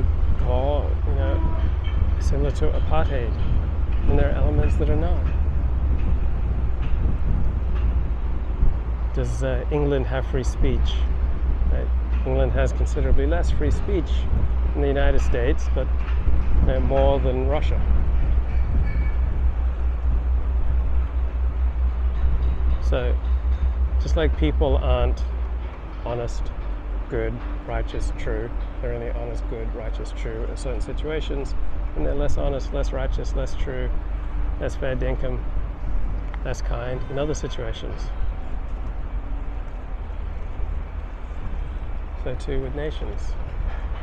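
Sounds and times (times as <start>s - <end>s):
ferry engine droning: 0.0s - 44.0s
rushing wind and water: 0.0s - 44.0s.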